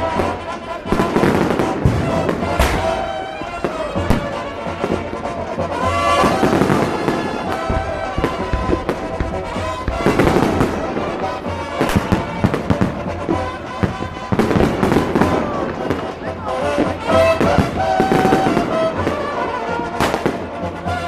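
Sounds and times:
crowd voices: 0:00.0 - 0:21.0
fireworks bangs and crackles: 0:00.0 - 0:21.0
music: 0:00.0 - 0:21.0.

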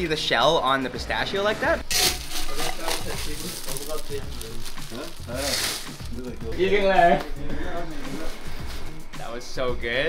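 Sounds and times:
metal scoop digging into nuts: 0:01.9 - 0:06.0
nuts pouring into plastic bag: 0:01.9 - 0:06.2.

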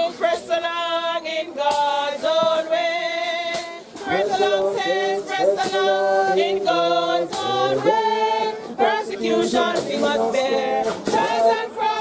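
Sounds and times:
group singing a hymn unaccompanied: 0:00.0 - 0:12.0.

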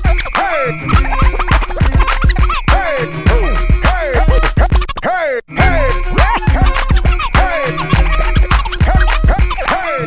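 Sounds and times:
hip-hop beat: 0:00.0 - 0:10.0
turntable scratching: 0:00.0 - 0:10.0.

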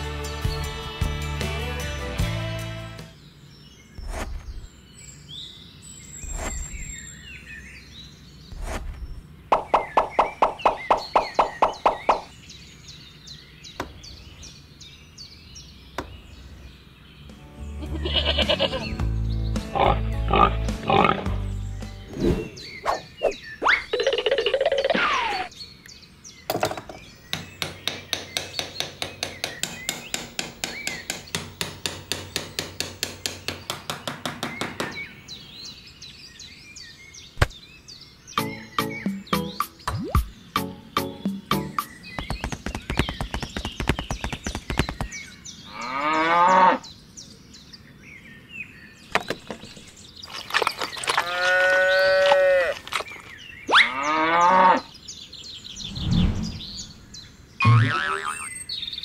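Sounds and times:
light background music: 0:17.2 - 0:22.4, 0:38.4 - 0:42.0.

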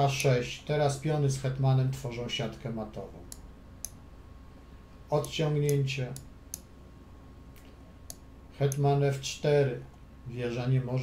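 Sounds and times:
computer mouse clicks: 0:05.2 - 0:06.7.

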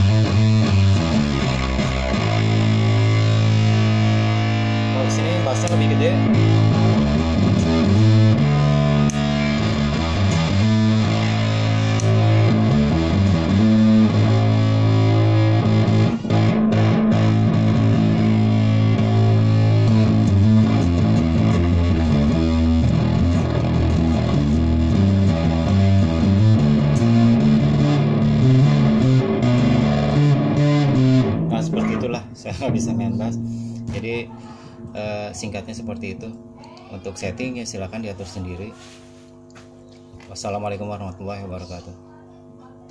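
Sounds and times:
distorted bass guitar riffs: 0:00.0 - 0:41.7.

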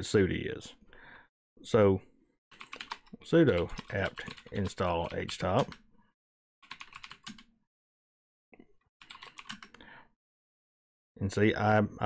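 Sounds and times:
typing on computer keyboard: 0:02.5 - 0:05.8, 0:06.6 - 0:07.5, 0:09.0 - 0:09.8.

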